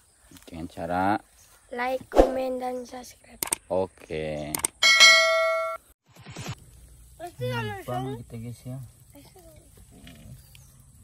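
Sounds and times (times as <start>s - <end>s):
bell-like ding: 4.8s - 5.8s.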